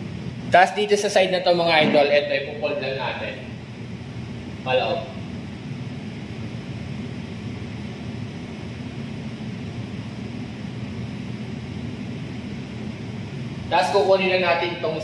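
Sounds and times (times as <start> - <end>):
machinery humming with hiss: 0.0 - 15.0.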